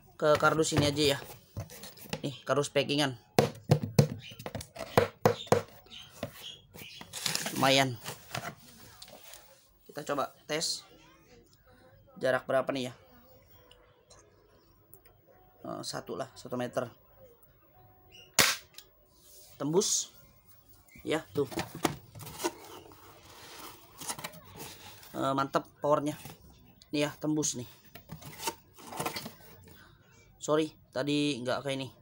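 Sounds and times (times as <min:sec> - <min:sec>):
rustling and scraping handling noise: 0:00.2 - 0:02.4, 0:03.8 - 0:10.2, 0:20.6 - 0:25.4, 0:26.0 - 0:26.6, 0:27.4 - 0:29.8.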